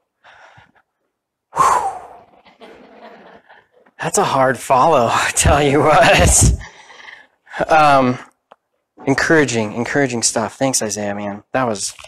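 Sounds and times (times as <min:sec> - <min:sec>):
man sighing into microphone: 0:01.5 - 0:02.3.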